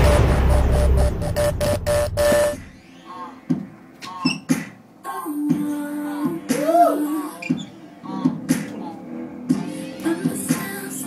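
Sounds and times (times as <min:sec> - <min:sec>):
low rumble: 0:00.0 - 0:02.8
stuttering electronic tone pulses: 0:00.0 - 0:02.8.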